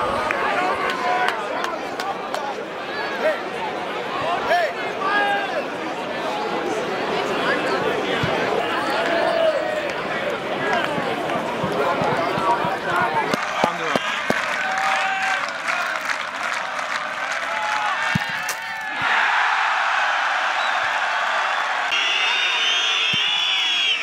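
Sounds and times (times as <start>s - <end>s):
crowd shouting: 7.6s - 24.0s
crowd cheering and applause: 8.6s - 24.0s.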